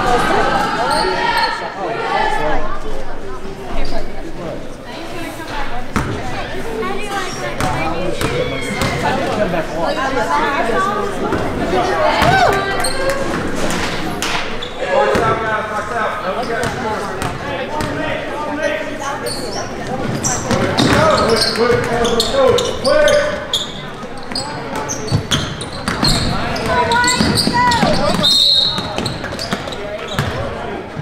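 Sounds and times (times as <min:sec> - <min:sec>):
voices of players and spectators: 0:00.0 - 0:31.0.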